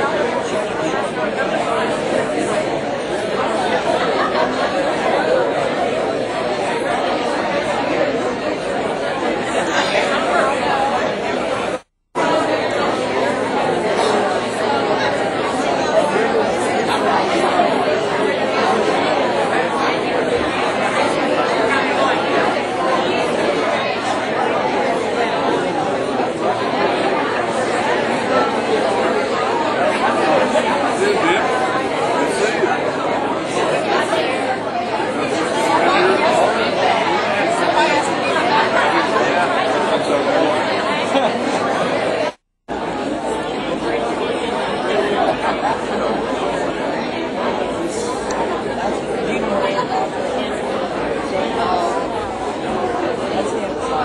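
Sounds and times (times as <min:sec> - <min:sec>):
crowd chatter: 0:00.0 - 0:54.0.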